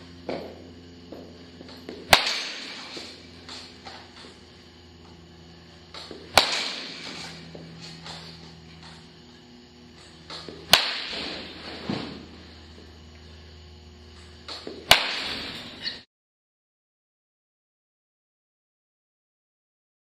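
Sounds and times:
baseball bat hitting ball: 0.2 - 4.5, 5.9 - 9.1, 10.0 - 12.5, 14.4 - 15.8.

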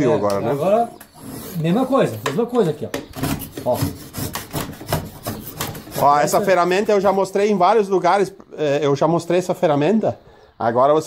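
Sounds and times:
drawknife scraping wood: 1.0 - 6.9.

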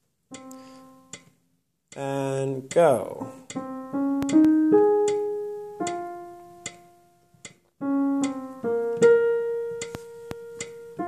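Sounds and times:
piano note ringing: 3.1 - 11.0.

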